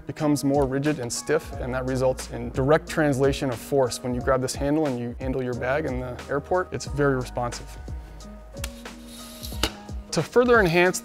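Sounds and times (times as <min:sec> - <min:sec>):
low bass background music: 0:00.0 - 0:11.0.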